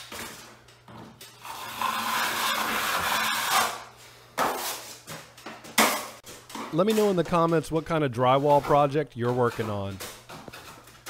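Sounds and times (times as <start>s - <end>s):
taping knife scraping compound: 1.5s - 3.8s.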